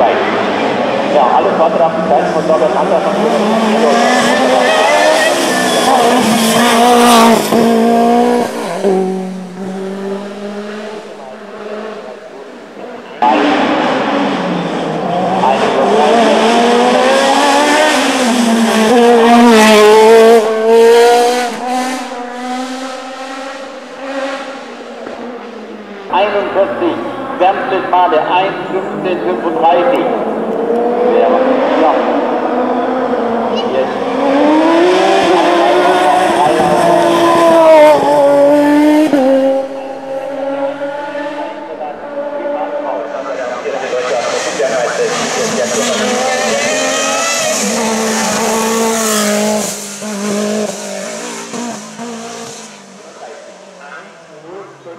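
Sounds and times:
race car engine at full throttle: 0.0s - 54.9s.

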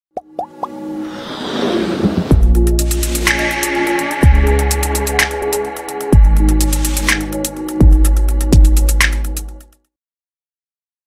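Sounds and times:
synthesized whoosh: 0.8s - 4.6s.

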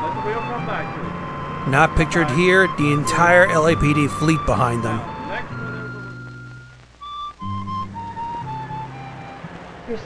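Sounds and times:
soundtrack music: 1.7s - 5.1s.

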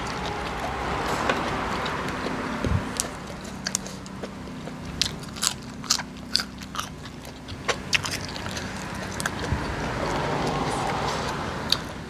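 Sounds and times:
chewing: 0.0s - 12.0s
beans snapping and crunching: 2.9s - 9.5s.

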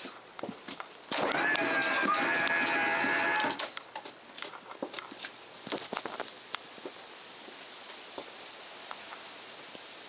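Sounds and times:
steady hiss: 2.8s - 10.0s.

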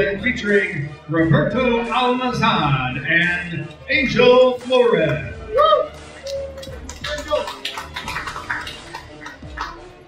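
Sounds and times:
people talking indistinctly: 0.0s - 9.8s
background music: 0.0s - 10.0s.

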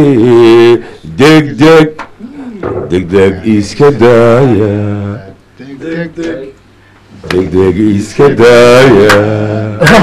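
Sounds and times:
man chanting into microphone: 7.2s - 9.9s.

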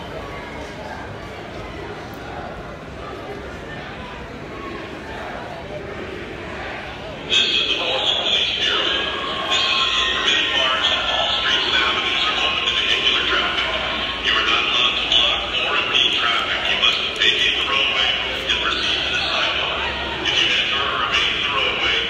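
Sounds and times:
crowd shouting and talking: 0.0s - 22.0s.

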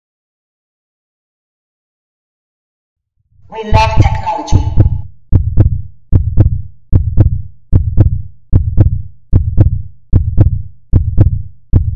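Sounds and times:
heartbeat double thump: 3.8s - 11.9s
sharp click on heartbeat: 4.6s - 11.9s.

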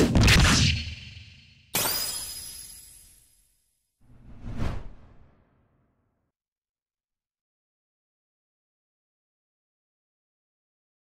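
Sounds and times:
whoosh sound effect: 4.1s - 5.5s.

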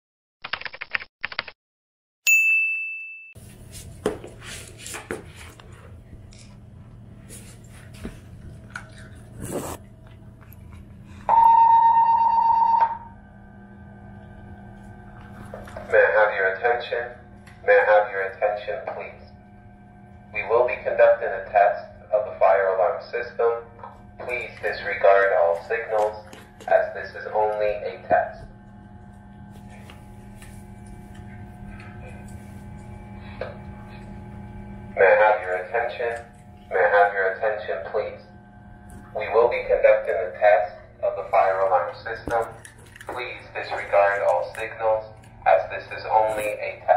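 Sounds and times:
public address announcement: 15.2s - 19.4s, 20.3s - 28.5s, 34.9s - 38.3s, 39.1s - 46.9s
dog crunching dry food: 42.5s - 43.3s.

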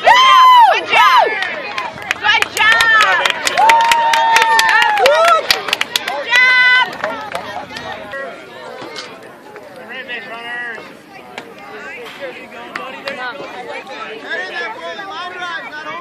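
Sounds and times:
spectators shouting: 0.0s - 8.9s
sharp claps: 1.3s - 8.0s.

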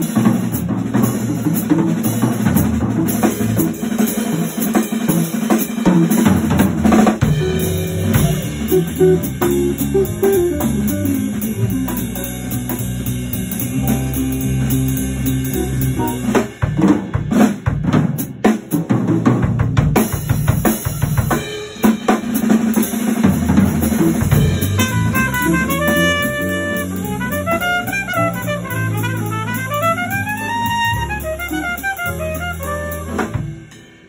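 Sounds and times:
drum kit solo: 0.0s - 34.0s
jazz ensemble playing: 0.0s - 34.0s
bass line: 6.3s - 18.0s, 23.2s - 33.7s
higher melodic line: 7.4s - 16.4s.

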